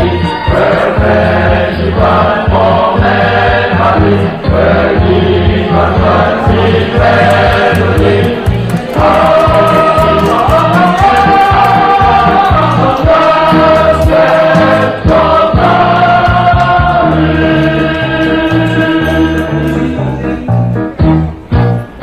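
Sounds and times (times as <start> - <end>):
choral singing: 0.0 - 20.2
bass line: 0.0 - 22.0.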